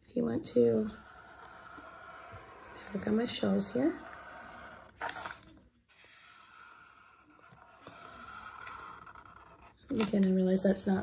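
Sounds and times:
marker scratching on paper: 0.6 - 10.1.

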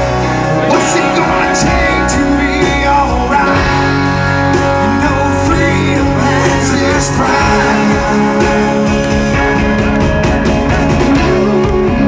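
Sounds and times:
person singing: 0.0 - 9.4
live rock band: 0.0 - 12.0.

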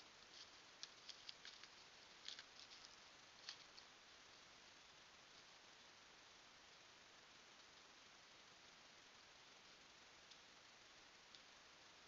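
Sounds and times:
faint steady hiss: 0.0 - 12.0
light ticks and patters: 0.0 - 12.0.

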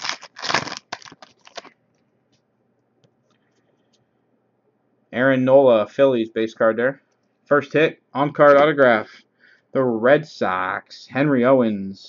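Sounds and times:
foil wrapper crinkling and tearing: 0.0 - 1.8.

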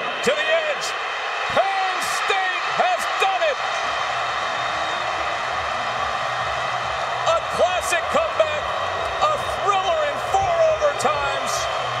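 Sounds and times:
stadium crowd cheering: 0.0 - 12.0
shouts and whoops: 0.2 - 12.0.

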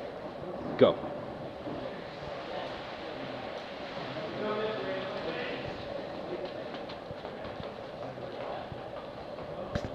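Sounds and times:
steady background noise: 0.0 - 9.9.

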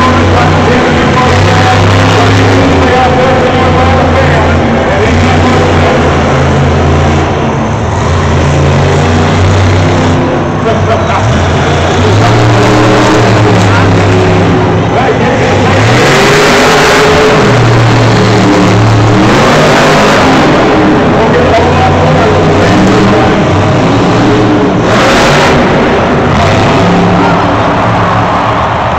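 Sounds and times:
truck engine running loud: 0.0 - 28.9.

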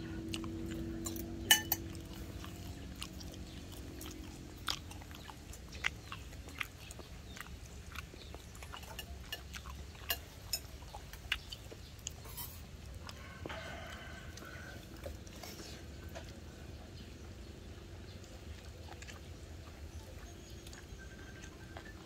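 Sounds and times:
faint chewing: 0.0 - 22.0
low background rumble: 0.0 - 22.0
spoons clinking against bowls: 1.0 - 2.0.

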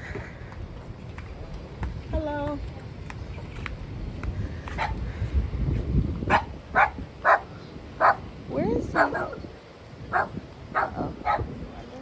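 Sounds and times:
dog barking: 6.3 - 8.2, 9.0 - 9.4, 10.1 - 11.5.

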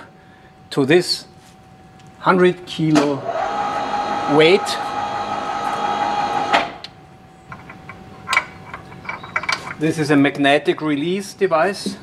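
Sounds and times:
electric motor whining: 3.2 - 6.9.

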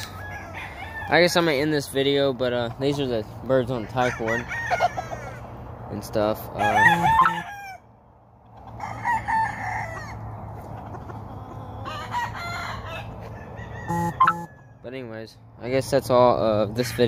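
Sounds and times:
roosters crowing: 0.0 - 2.0, 2.8 - 15.0.

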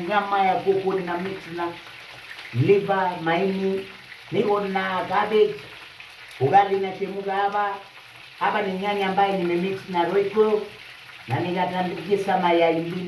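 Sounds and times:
meat sizzling in a pan: 0.0 - 13.0.

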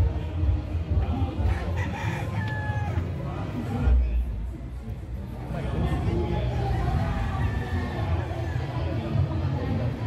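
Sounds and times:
crowd chatter: 0.0 - 10.0
rooster crowing: 1.5 - 3.0.

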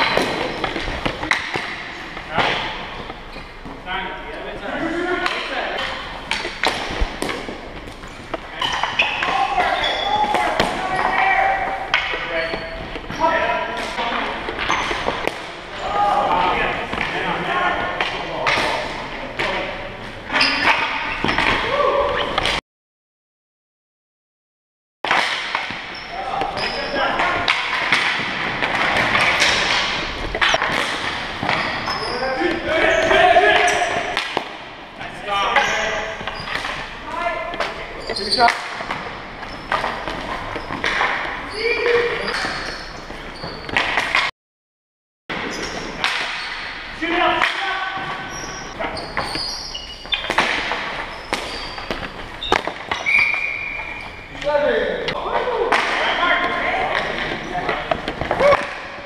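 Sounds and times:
hockey sticks clacking: 0.0 - 22.6, 25.1 - 44.3, 45.3 - 59.0
players shouting: 8.6 - 12.5, 15.6 - 18.3, 31.9 - 34.3.

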